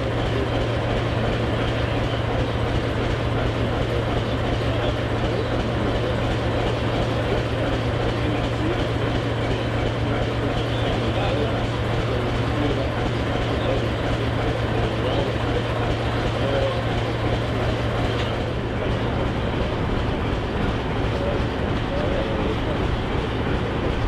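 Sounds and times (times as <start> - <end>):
diesel locomotive engine idling: 0.0 - 24.0.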